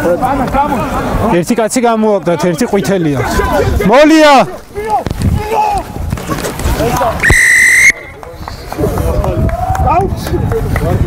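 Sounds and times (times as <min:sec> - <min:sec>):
referee's whistle blast: 0:07.2 - 0:08.2.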